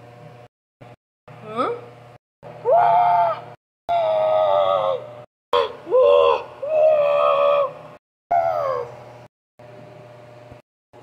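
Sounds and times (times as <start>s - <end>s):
person imitating howling cry: 2.6s - 9.0s.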